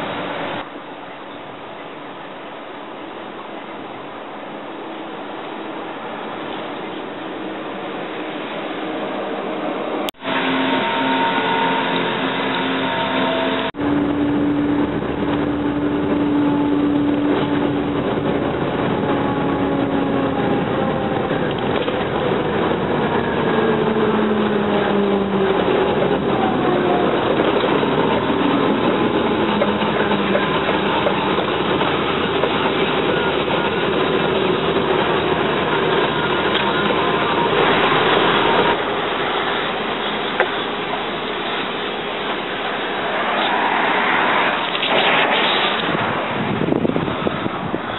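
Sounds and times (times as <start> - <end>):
road noise: 0.0 - 47.9
wind noise: 13.8 - 41.9, 42.6 - 47.9.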